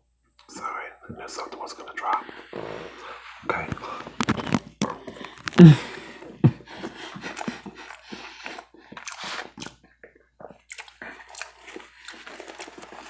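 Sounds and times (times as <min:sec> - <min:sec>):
person chewing food: 0:02.5 - 0:13.0.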